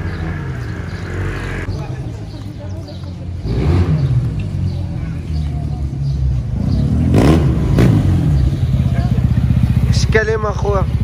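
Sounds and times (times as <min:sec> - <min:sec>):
motorcycle engine revving: 0:00.0 - 0:01.9, 0:03.3 - 0:11.0.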